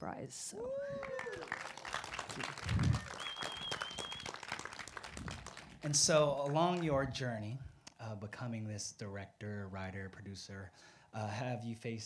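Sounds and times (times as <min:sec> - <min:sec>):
audience clapping: 0:00.9 - 0:07.1.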